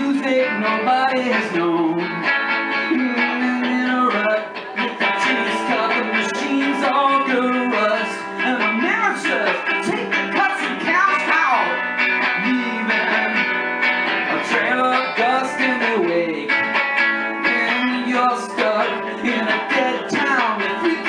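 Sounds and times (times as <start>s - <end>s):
surf-rock electric guitar: 0.0s - 21.0s.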